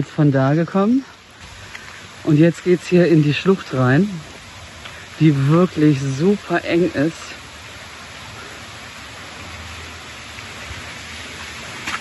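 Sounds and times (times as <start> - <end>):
water rushing in gorge: 0.0 - 12.0.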